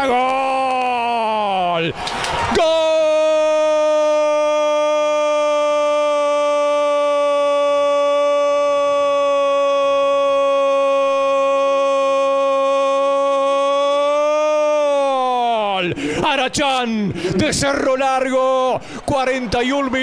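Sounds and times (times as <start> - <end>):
man shouting a long held cry: 0.0 - 20.0.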